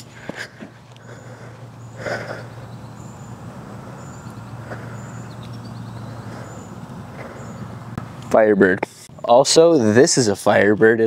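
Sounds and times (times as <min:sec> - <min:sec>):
distant traffic hum: 0:00.0 - 0:11.0.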